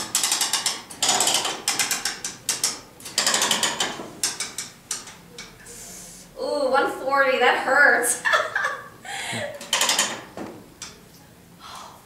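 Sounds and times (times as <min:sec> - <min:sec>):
ratchet pawl clicking: 0:00.0 - 0:05.6.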